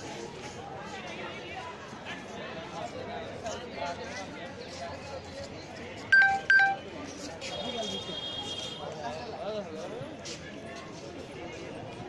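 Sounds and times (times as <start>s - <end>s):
people talking: 0.7s - 8.1s
loud electronic beeps: 6.2s - 6.8s.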